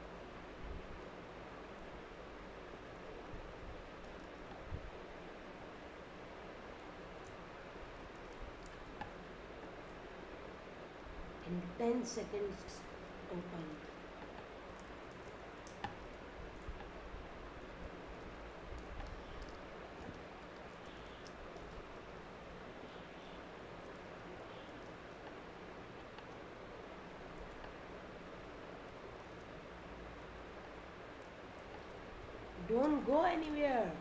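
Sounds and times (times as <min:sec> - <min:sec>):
steady background hiss: 0:00.0 - 0:34.0.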